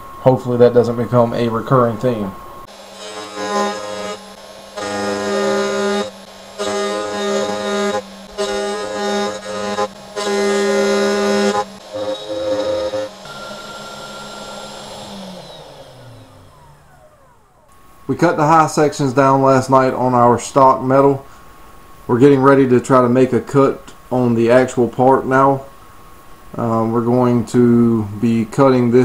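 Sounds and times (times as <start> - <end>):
spindle humming: 1.1 - 17.8
spindle winding down: 2.1 - 17.8
stepper motors singing tones: 2.7 - 17.7.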